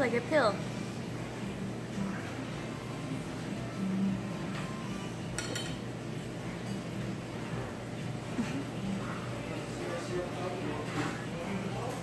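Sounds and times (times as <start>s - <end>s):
low background hum: 0.0s - 12.0s
tableware clinking: 4.5s - 5.9s, 6.6s - 7.1s.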